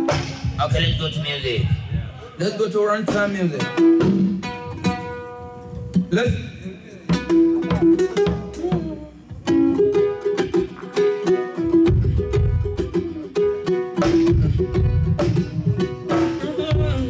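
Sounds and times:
drum kit: 0.0s - 17.0s.

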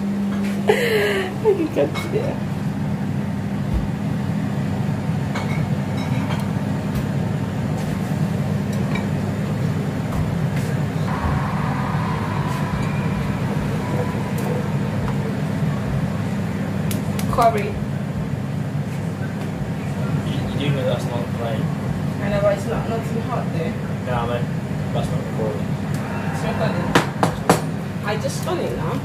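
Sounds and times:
faint high tone: 11.1s - 16.4s.

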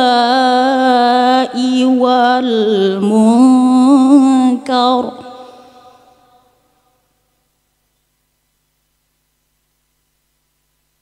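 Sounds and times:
woman reciting with echo: 0.0s - 7.1s.

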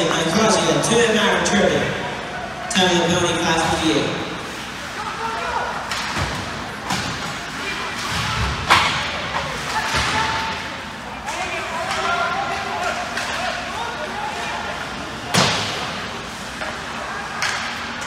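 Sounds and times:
spectators' voices: 0.0s - 18.0s
pucks and players hitting boards: 5.8s - 18.0s.

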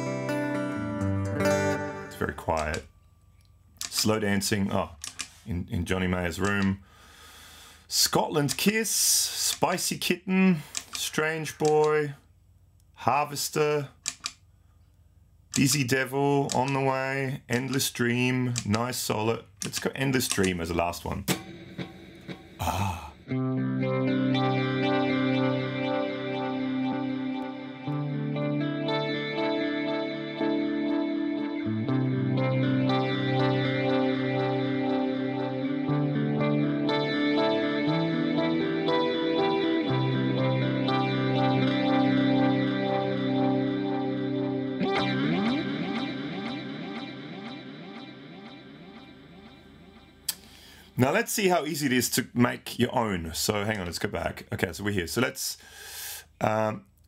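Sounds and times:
electric guitar chords with echo: 0.0s - 2.8s, 21.3s - 51.0s.

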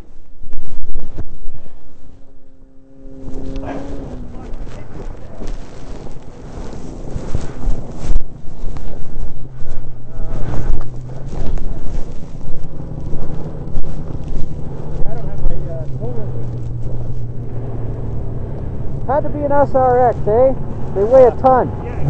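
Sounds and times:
wind buffeting microphone: 0.0s - 22.0s
snowmobile engine idling: 1.3s - 22.0s.

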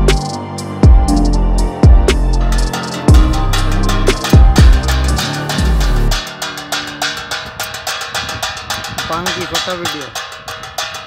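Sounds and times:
metal strip clanging on pan: 2.5s - 11.0s.

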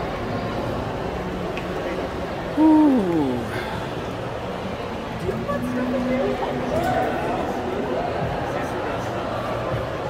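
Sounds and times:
crowd murmur: 0.0s - 10.0s
person hooting a falling note: 2.6s - 3.5s.

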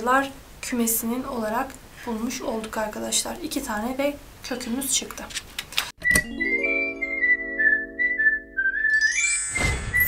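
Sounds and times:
whistled jingle melody: 6.0s - 10.0s
held chord: 6.3s - 9.1s.

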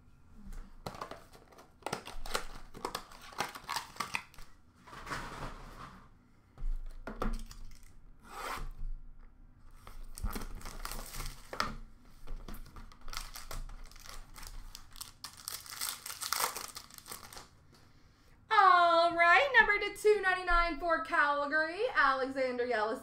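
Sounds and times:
plastic wrappers crinkling: 0.8s - 4.5s, 7.3s - 8.0s, 9.8s - 11.7s, 12.3s - 17.5s
packaging tearing: 1.0s - 4.5s, 9.8s - 11.6s, 12.7s - 17.5s.

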